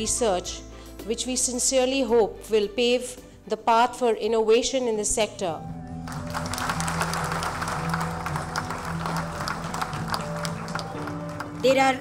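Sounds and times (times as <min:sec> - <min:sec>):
background music: 0:00.0 - 0:12.0
audience applauding: 0:06.0 - 0:12.0.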